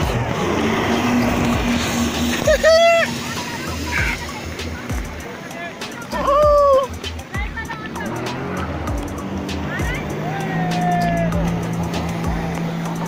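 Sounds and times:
jet ski engine drone: 0.0s - 13.0s
people calling out: 2.4s - 4.8s, 6.0s - 8.7s, 9.6s - 11.7s.

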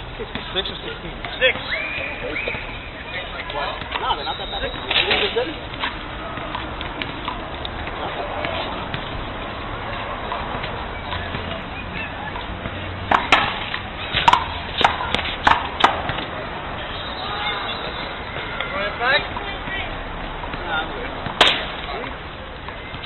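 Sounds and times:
ball smacking off concrete: 10.6s - 16.3s, 21.2s - 22.0s.

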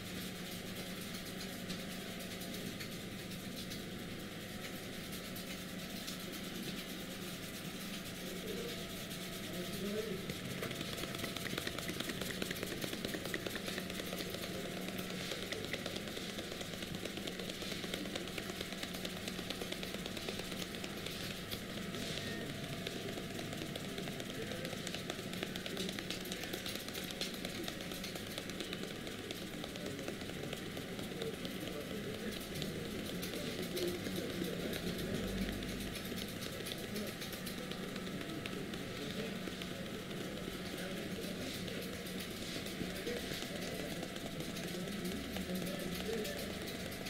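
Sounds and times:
fingertips rustling through hair: 1.7s - 47.0s.

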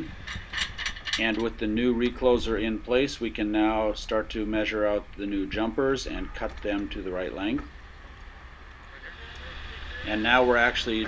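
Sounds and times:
faint low rumble: 0.0s - 11.0s
light hiss: 7.5s - 11.0s.

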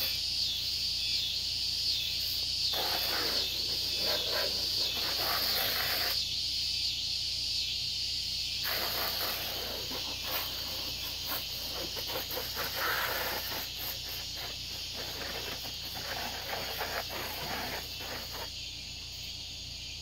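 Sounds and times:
hose spray on plastic: 2.7s - 6.2s, 8.6s - 18.5s.

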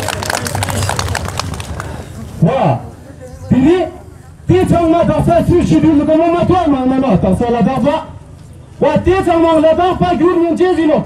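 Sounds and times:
crowd clapping: 0.0s - 2.3s
voices: 0.0s - 11.0s.

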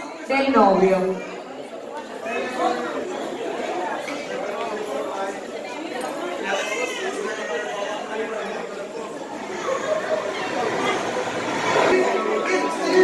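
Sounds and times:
overlapping chatter of people: 0.0s - 13.0s.

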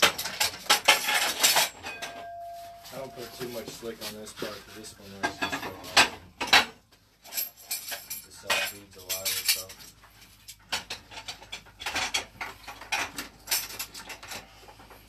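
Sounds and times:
metallic clinks of tools: 7.2s - 10.0s.

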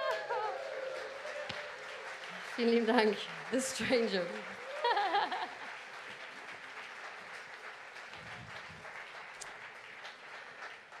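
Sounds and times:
audience applauding: 0.0s - 11.0s.

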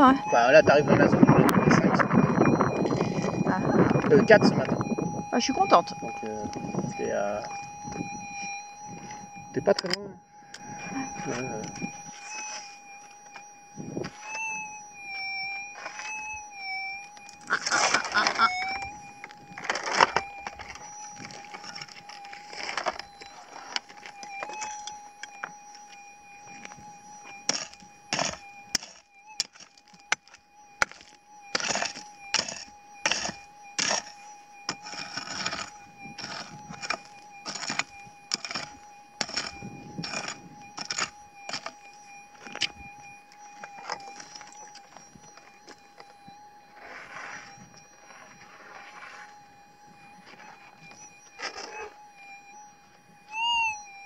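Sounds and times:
soil scraping: 11.2s - 12.8s, 15.7s - 16.2s, 17.5s - 18.4s, 19.6s - 24.8s, 27.5s - 41.7s, 46.8s - 49.3s
pick striking gravelly ground: 27.4s - 41.8s.

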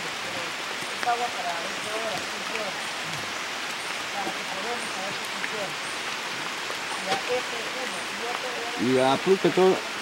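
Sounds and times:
rain hissing: 0.0s - 10.0s.

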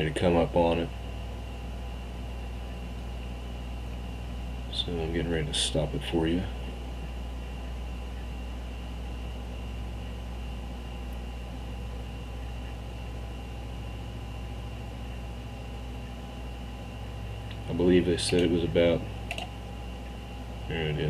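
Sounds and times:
faint high whine: 0.0s - 21.0s
steady low hum: 0.0s - 21.0s.

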